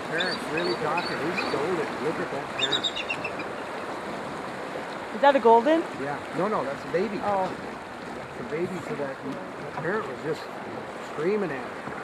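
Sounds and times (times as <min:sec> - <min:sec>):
river water rushing: 0:00.0 - 0:12.0
eagle chirping: 0:00.2 - 0:01.6, 0:02.6 - 0:03.9.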